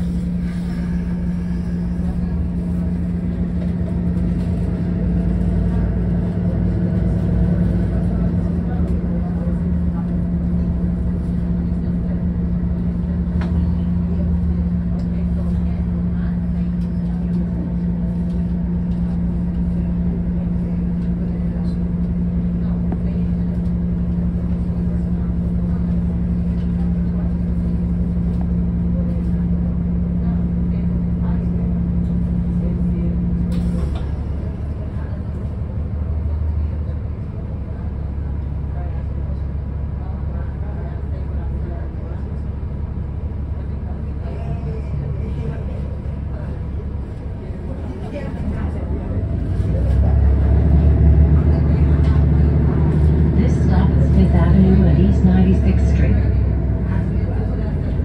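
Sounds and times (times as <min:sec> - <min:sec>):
bus engine drone: 0:00.0 - 0:58.0
road rumble: 0:00.0 - 0:58.0.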